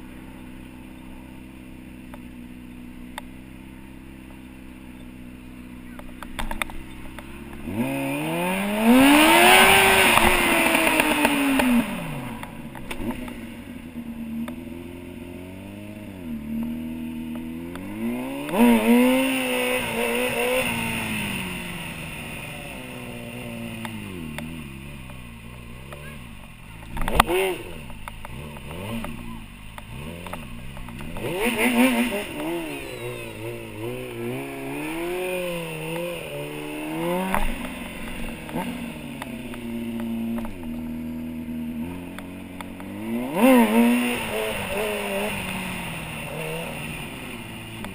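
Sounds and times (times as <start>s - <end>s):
motorcycle engine revving: 0.0s - 47.9s.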